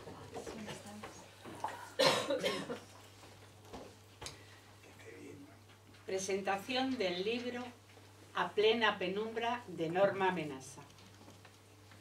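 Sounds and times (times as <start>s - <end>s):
person coughing: 1.6s - 2.9s.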